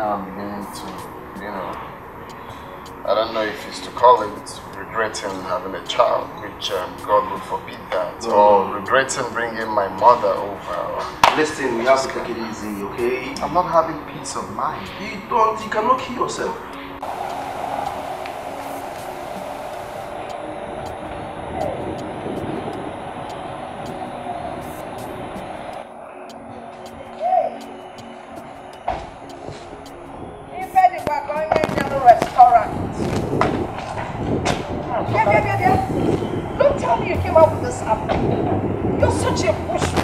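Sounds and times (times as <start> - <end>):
people talking: 0.0 - 16.7, 19.4 - 22.8, 30.6 - 33.4, 34.8 - 40.0
car engine and tyres: 0.0 - 25.8
soft background music: 0.0 - 40.0
low hum: 32.9 - 40.0.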